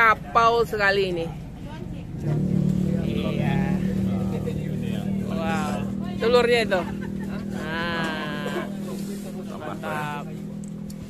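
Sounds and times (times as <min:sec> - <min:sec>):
vehicle engine droning hum: 0:00.0 - 0:11.0.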